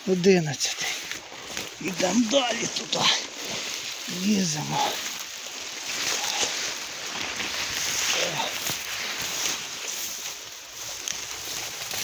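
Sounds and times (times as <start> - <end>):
branches brushing and rustling: 0.0 - 12.0
footsteps on dry forest litter: 0.0 - 12.0.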